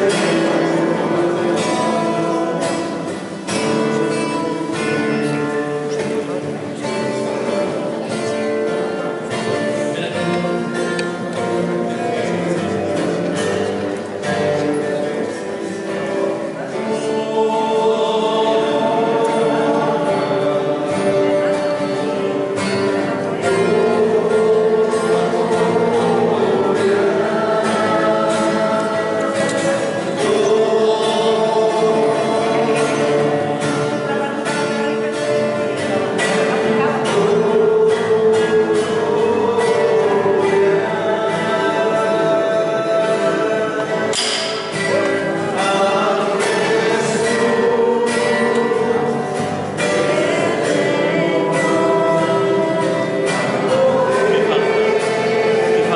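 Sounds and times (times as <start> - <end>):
group singing slow religious song: 0.0 - 55.9.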